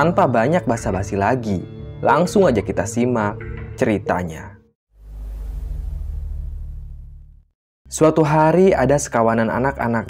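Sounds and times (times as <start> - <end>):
low rumbling drone: 5.0 - 7.5.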